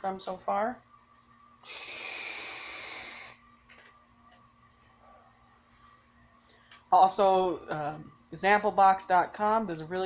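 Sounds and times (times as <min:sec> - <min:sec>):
vape drag hiss: 0:01.6 - 0:03.4.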